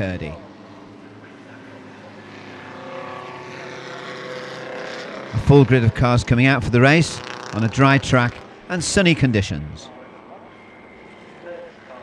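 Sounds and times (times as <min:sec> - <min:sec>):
racing car engines passing: 0:00.0 - 0:12.0.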